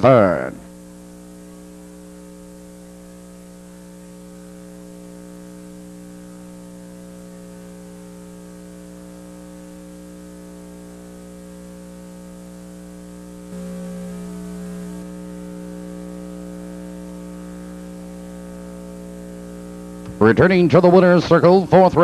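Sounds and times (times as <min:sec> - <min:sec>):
electrical mains hum: 0:00.0 - 0:22.0.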